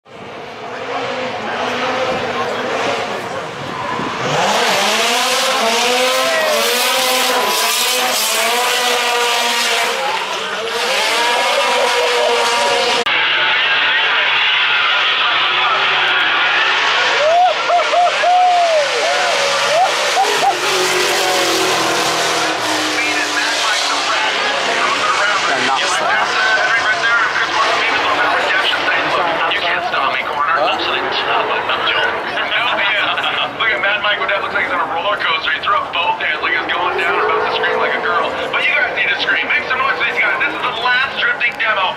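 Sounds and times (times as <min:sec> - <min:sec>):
car engine revving: 0:00.1 - 0:41.6.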